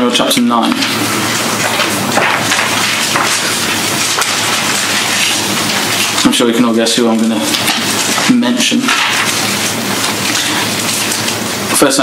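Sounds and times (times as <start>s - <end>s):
steady loud hiss: 0.0s - 12.0s.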